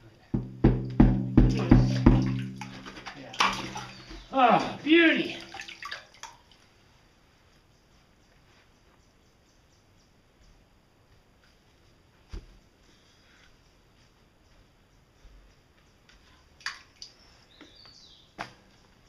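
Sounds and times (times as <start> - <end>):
sharp knocks: 0.4 - 4.3.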